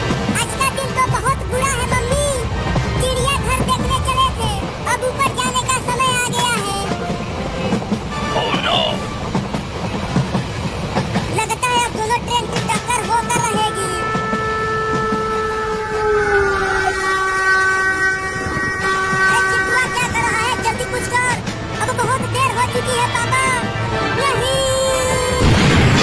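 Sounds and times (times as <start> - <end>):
train rumbling on rails: 0.0 - 26.0
multi-note train horn: 6.9 - 9.4, 12.9 - 25.1.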